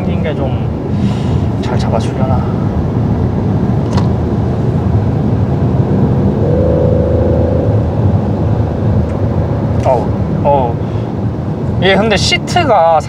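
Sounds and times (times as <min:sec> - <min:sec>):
road and tyre rumble: 0:00.0 - 0:13.0
car engine accelerating: 0:04.2 - 0:10.6
thin steady tone: 0:06.3 - 0:09.5.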